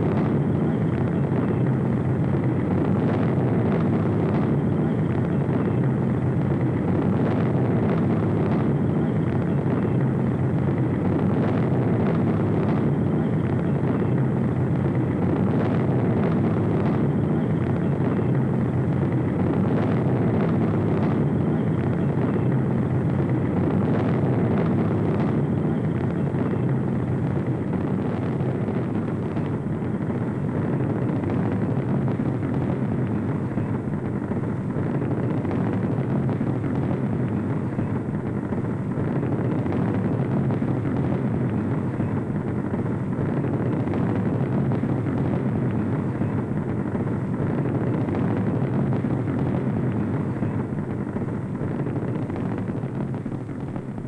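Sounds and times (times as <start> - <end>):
rocket engines deep rumble: 0.0 - 54.0.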